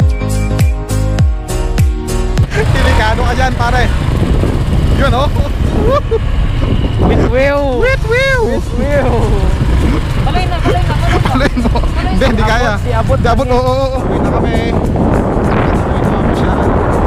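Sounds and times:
wind: 1.6 - 17.0
motorcycle engines rumbling: 2.2 - 17.0.

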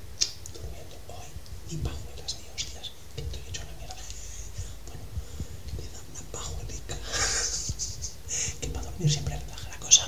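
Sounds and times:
man whispering: 0.4 - 10.0.

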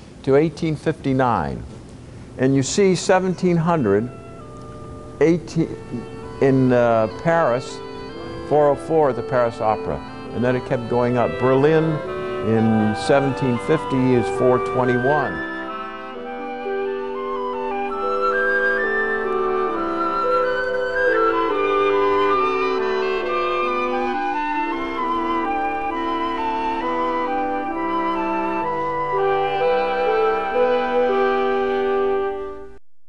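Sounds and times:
solo oboe melody: 3.4 - 32.8.

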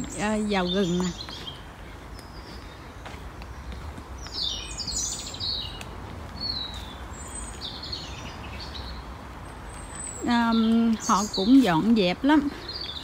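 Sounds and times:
songbird singing: 0.0 - 13.0.

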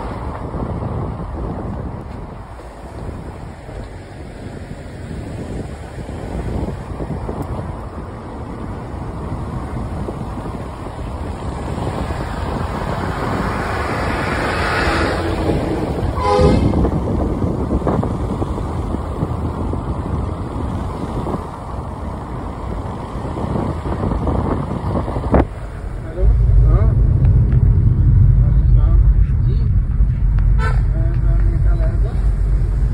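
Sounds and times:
car wind and road noise: 0.0 - 32.9
deep rumble: 7.0 - 32.9
car horn toot: 16.2 - 16.9, 30.5 - 30.9.

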